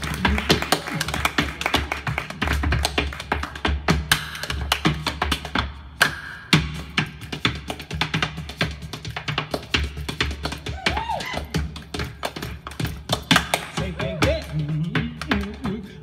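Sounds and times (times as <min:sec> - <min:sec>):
hand claps and body slaps: 0:00.0 - 0:14.6.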